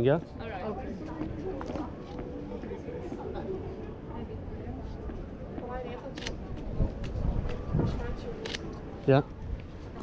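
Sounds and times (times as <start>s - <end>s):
faint background voices: 0.0s - 10.0s
outdoor noise: 0.0s - 10.0s.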